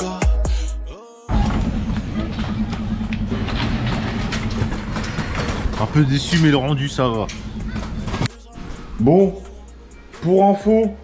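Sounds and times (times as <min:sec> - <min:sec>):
train running along track: 0:01.3 - 0:08.3
man speaking: 0:05.8 - 0:07.4, 0:08.9 - 0:09.6, 0:10.2 - 0:11.0.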